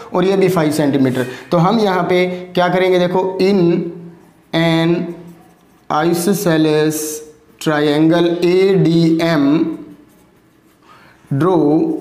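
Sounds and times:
person speaking: 0:00.0 - 0:12.0
marker writing on whiteboard: 0:00.3 - 0:12.0.

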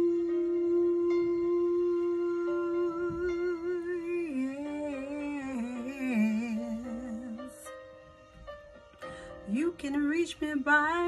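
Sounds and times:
woman humming melody: 0:00.0 - 0:07.7.

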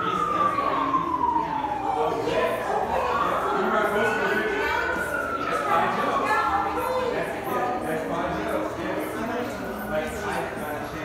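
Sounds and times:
siren wailing: 0:00.0 - 0:07.9.

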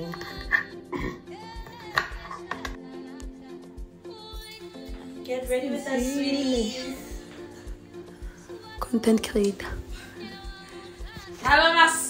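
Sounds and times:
background music with low thuds: 0:00.0 - 0:12.0.

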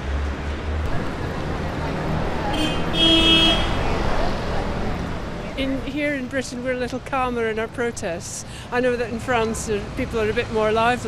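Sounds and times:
traffic rumble: 0:00.0 - 0:11.0
vehicle horn toot: 0:02.5 - 0:03.8.

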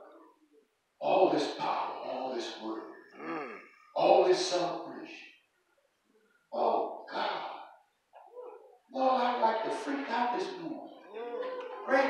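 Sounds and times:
person making wordless sounds: 0:01.0 - 0:04.6, 0:06.6 - 0:07.6.

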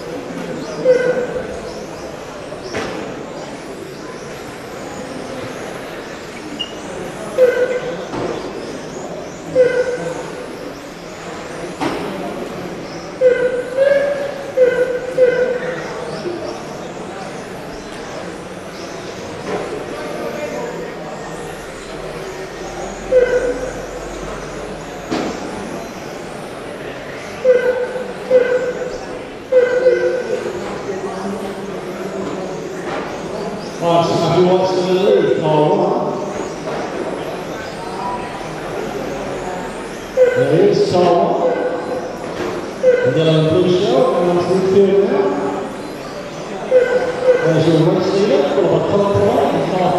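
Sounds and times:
muffled echoing commentary voice: 0:00.0 - 0:25.8, 0:26.6 - 0:49.9.

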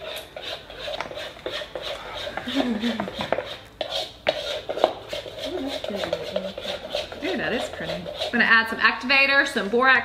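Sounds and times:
spoon stirring slime in bowl: 0:00.0 - 0:09.6.

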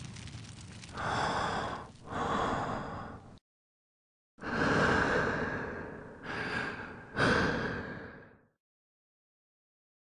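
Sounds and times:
heavy laboured breathing: 0:00.9 - 0:03.4, 0:04.4 - 0:08.6.

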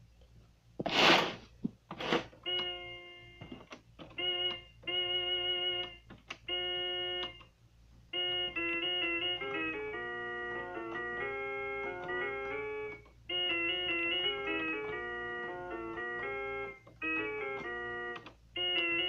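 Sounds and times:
electronic keyboard playing: 0:02.4 - 0:07.5, 0:08.1 - 0:19.0.

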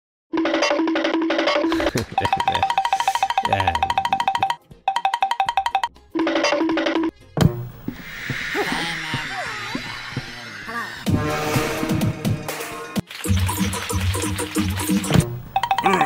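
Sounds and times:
electronic dance music: 0:02.0 - 0:04.6.

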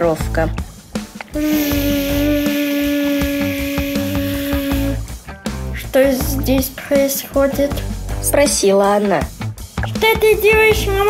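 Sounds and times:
background music with low beat: 0:00.0 - 0:11.0
cartoon insect buzzing hum: 0:01.3 - 0:05.1.

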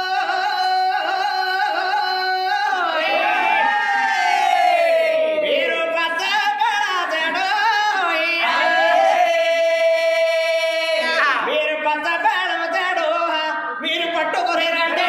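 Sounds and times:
person singing through loudspeaker: 0:00.0 - 0:03.7, 0:05.1 - 0:15.0.

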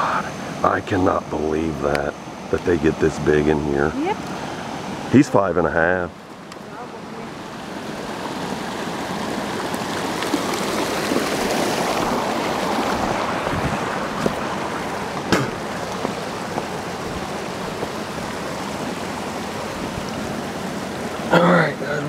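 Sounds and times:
creek water rushing: 0:00.0 - 0:22.0.

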